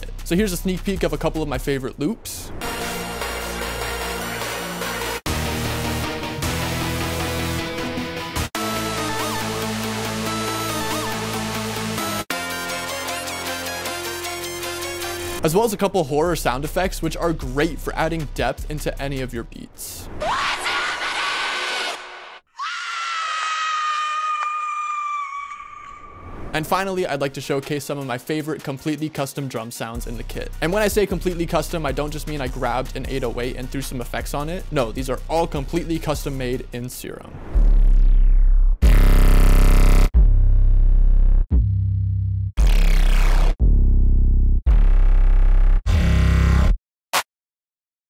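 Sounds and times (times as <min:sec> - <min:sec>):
deep bass notes: 0:00.0 - 0:02.0, 0:30.0 - 0:46.8
high horror screams: 0:20.2 - 0:26.4.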